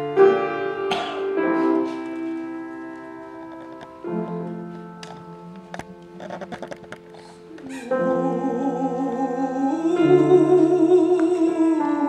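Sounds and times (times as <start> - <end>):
keyboard chord: 0.0 - 12.0.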